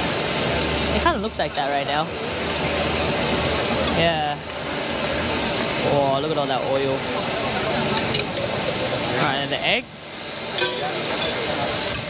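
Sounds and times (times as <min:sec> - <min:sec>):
crowd voices: 0:00.0 - 0:12.0
hot oil sizzling on griddle: 0:00.0 - 0:12.0.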